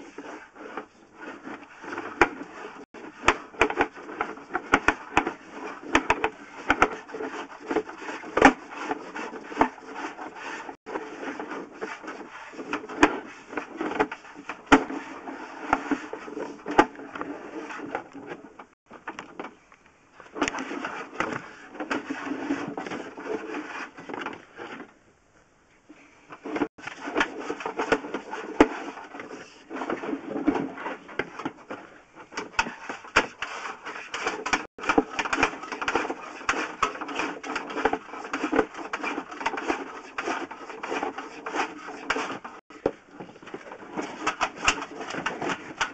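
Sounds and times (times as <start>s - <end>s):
camera cable clicking and scraping in pipe: 0.0s - 25.0s, 26.3s - 45.9s.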